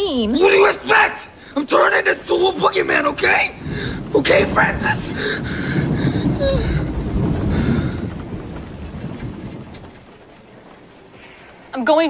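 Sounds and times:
harsh rumbling noise effect: 0.0s - 11.7s.

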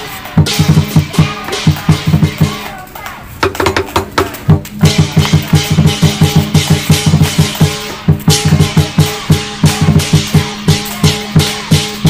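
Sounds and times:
fast steady drum beat: 0.0s - 12.0s.

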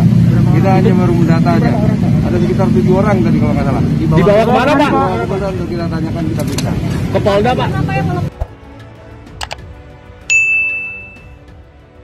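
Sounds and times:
soft background music: 0.4s - 12.0s
bright notification ding: 10.3s - 11.4s.

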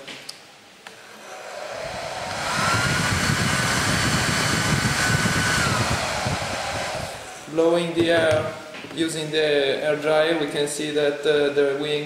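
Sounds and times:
hair dryer blowing air: 0.9s - 8.7s
motor whine: 1.0s - 7.5s.

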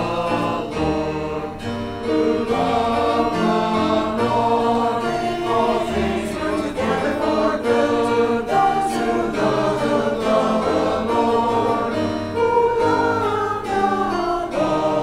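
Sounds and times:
choir singing in parts: 0.0s - 15.0s.

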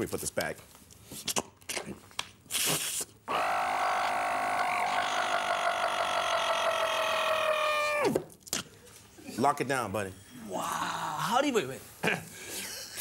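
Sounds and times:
short hiss: 2.5s - 3.2s
man imitating machine buzzing whine: 3.3s - 8.0s.

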